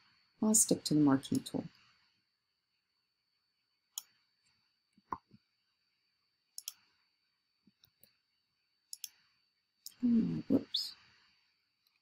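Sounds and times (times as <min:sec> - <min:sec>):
computer mouse clicks: 0:03.9 - 0:04.2, 0:06.6 - 0:06.9, 0:08.9 - 0:09.2.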